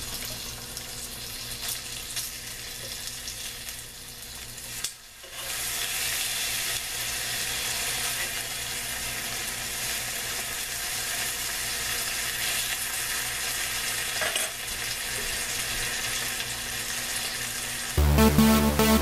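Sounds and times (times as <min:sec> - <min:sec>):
bacon sizzling in a frying pan: 0:00.0 - 0:18.0.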